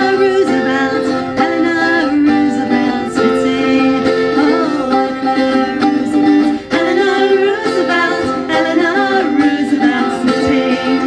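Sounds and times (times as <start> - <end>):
acoustic guitar: 0.0 - 11.0
women singing folk song: 0.0 - 11.0.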